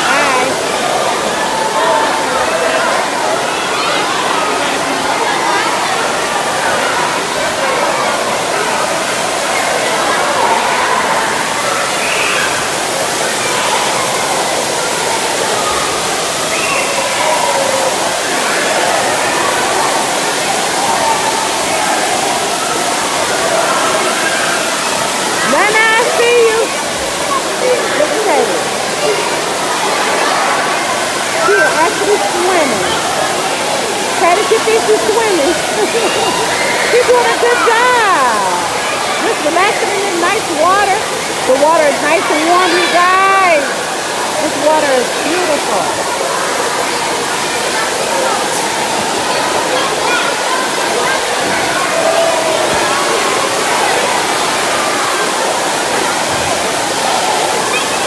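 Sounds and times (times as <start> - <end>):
babble of many voices: 0.0 - 58.0
pool water splashing: 0.0 - 58.0.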